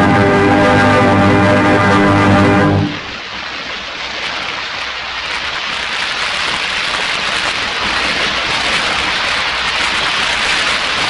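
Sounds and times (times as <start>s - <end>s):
orchestral and organ music: 0.0s - 3.1s
steady rushing noise: 0.0s - 11.0s.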